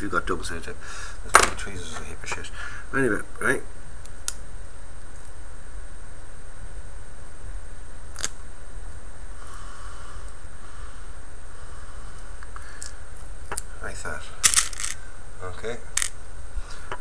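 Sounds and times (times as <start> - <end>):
steady low hum: 0.0 - 17.0
fingers rustling on tape: 14.4 - 15.0.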